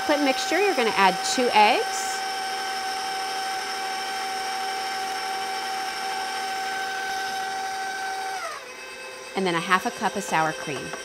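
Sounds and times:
stand mixer motor whining: 0.0s - 11.0s.

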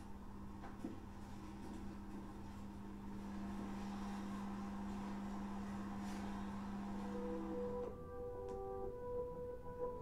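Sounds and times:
steady low hum: 0.0s - 10.0s
soft sustained orchestral notes: 7.1s - 10.0s.

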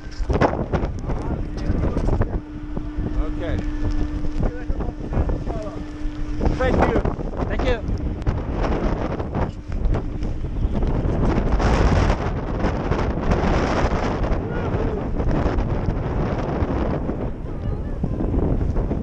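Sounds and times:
machinery hum: 0.0s - 19.0s
wind buffeting microphone: 0.0s - 19.0s.

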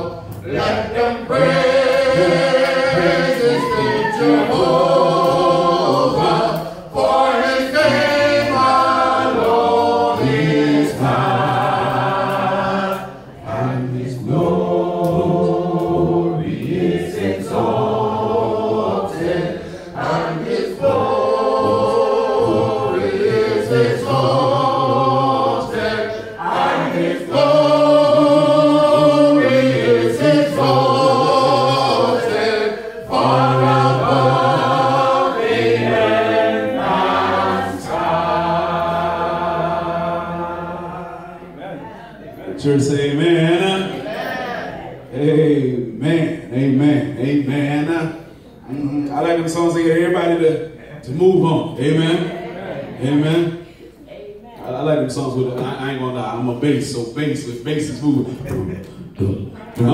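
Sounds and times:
congregation singing a hymn: 0.0s - 59.9s.

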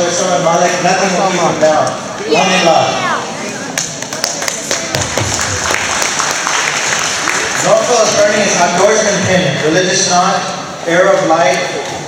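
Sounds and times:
murmur of voices: 0.0s - 5.7s, 6.4s - 12.0s
hand clapping: 3.8s - 7.9s.

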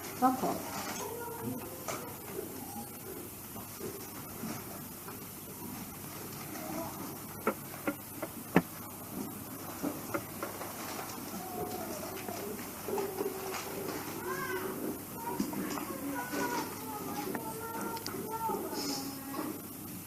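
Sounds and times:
faint background murmur: 0.0s - 20.0s
microphone handling clicks and knocks: 7.4s - 8.8s.

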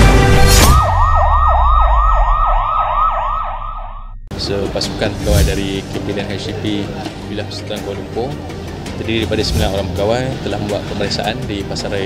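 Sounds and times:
music: 0.0s - 1.2s, 4.3s - 12.0s
siren yelping: 0.6s - 4.3s.

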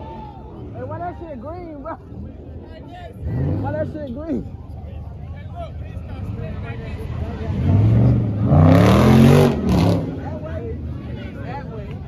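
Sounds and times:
car engine revving: 3.2s - 4.3s, 6.2s - 11.0s.

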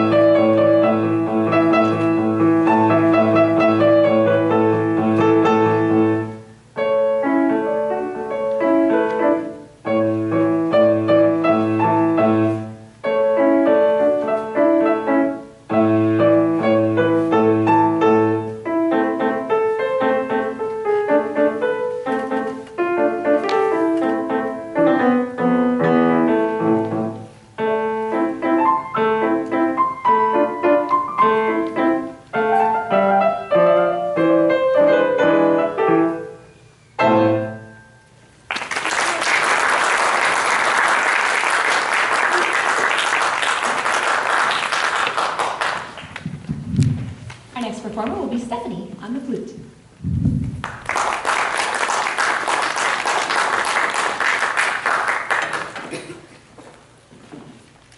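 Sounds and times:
classical grand piano piece: 0.0s - 57.9s
audience applauding: 38.5s - 46.2s, 50.6s - 56.3s.

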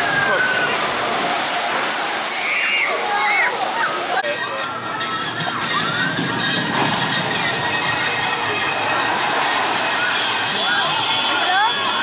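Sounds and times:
water crashing into pool: 0.0s - 4.3s, 5.6s - 12.0s.

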